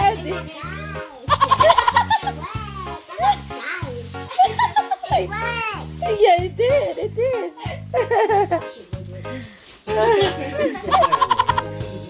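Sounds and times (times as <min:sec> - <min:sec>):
high-pitched laughter: 0:01.3 - 0:02.4, 0:04.3 - 0:05.3, 0:10.0 - 0:11.8
music with repeating bass beat: 0:01.3 - 0:12.0.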